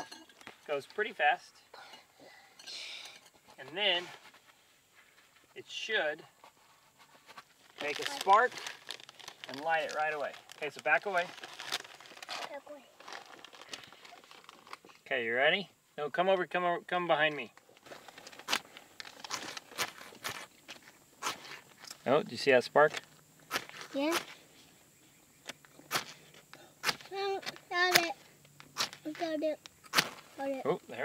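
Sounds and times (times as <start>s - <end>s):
rustling of paper and lint: 6.4s - 15.0s.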